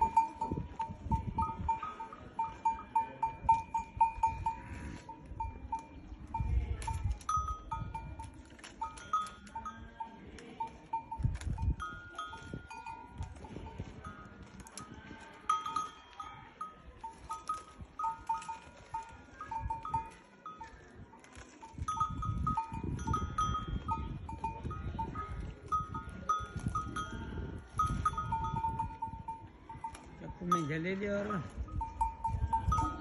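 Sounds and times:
livestock bells clinking: 0:00.0 - 0:33.0.

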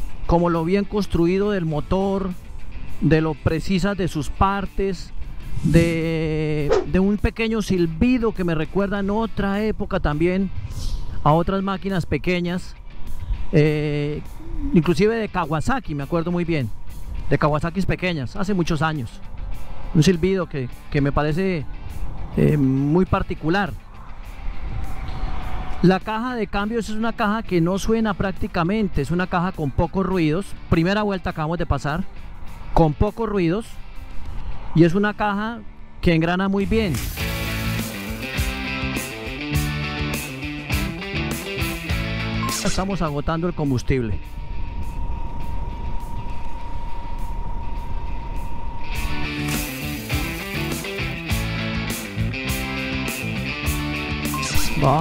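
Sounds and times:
rushing wind: 0:00.0 - 0:39.6, 0:42.7 - 0:53.6
music with beat and guitar: 0:37.0 - 0:42.8, 0:48.4 - 0:55.0
thin steady whistle: 0:44.2 - 0:49.2.

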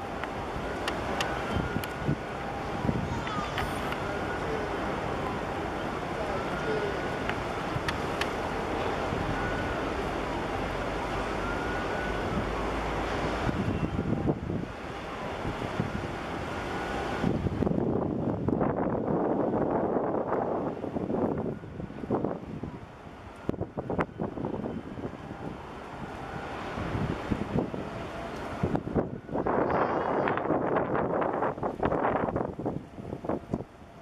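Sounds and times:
wind buffeting microphone: 0:00.0 - 0:04.2, 0:13.2 - 0:34.0
large ship passing: 0:00.0 - 0:34.0.

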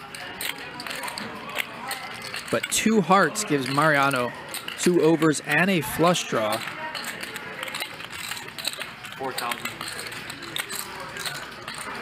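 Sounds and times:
poker chips clicking: 0:00.0 - 0:12.0.

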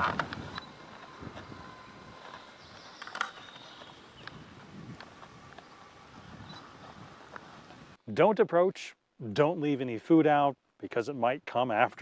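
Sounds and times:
faint clicks and rustles: 0:00.0 - 0:08.0
forest ambience: 0:00.0 - 0:11.8.

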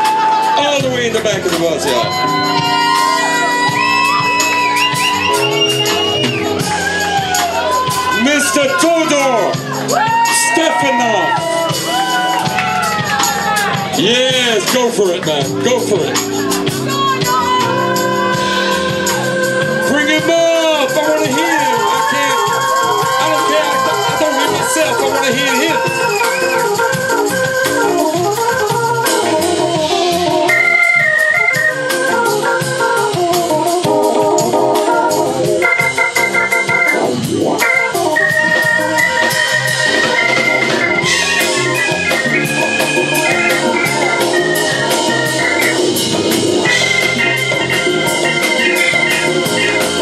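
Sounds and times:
drums: 0:00.0 - 0:50.0
organ keyboard solo: 0:00.0 - 0:50.0.

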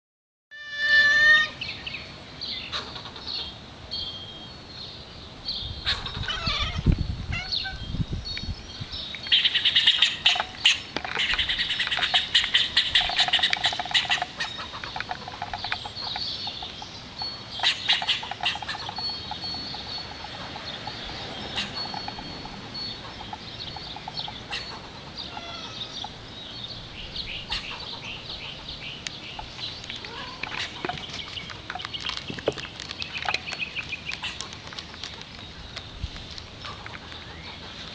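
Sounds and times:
loud pitched squirrel call: 0:00.6 - 0:01.6, 0:05.8 - 0:07.8, 0:09.3 - 0:16.8, 0:17.6 - 0:26.2
squirrel chattering alarm call: 0:09.3 - 0:32.0.

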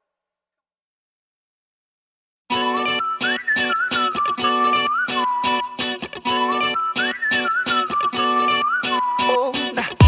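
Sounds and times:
plucked guitar: 0:02.5 - 0:10.0
whistled melody: 0:02.5 - 0:10.0.

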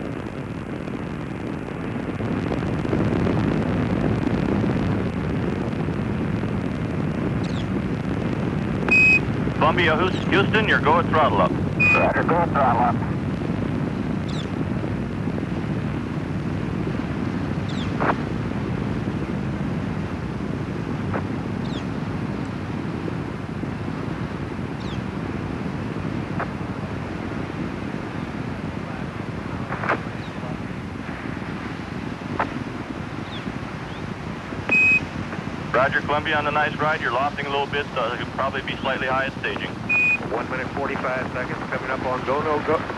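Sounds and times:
rocket engines rumbling: 0:00.0 - 0:42.9
short high radio beep: 0:08.9 - 0:09.2, 0:11.8 - 0:12.2, 0:34.7 - 0:35.1, 0:39.8 - 0:40.3.

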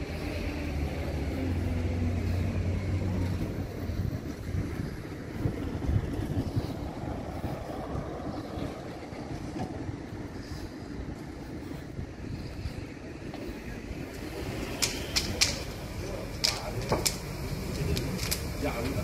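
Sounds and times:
vehicle engine humming: 0:00.0 - 0:19.0
wind buffeting microphone: 0:00.0 - 0:19.0.

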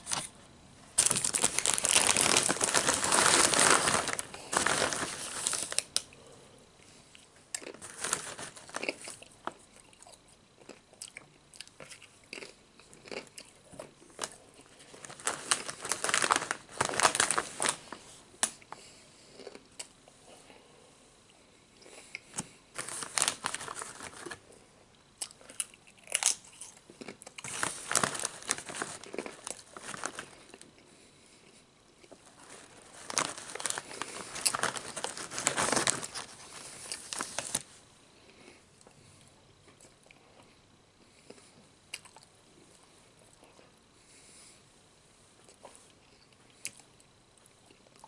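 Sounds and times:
plastic chip bag rustling: 0:01.0 - 0:06.0, 0:07.6 - 0:09.6, 0:14.1 - 0:18.6, 0:22.7 - 0:24.5, 0:27.0 - 0:30.6, 0:32.1 - 0:37.8
crunching tortilla chips: 0:01.0 - 0:06.1, 0:07.5 - 0:19.9, 0:21.9 - 0:24.4, 0:25.2 - 0:30.8, 0:32.0 - 0:37.7.

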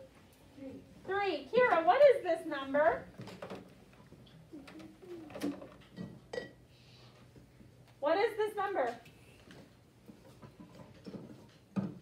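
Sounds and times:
child murmuring: 0:04.5 - 0:05.8.

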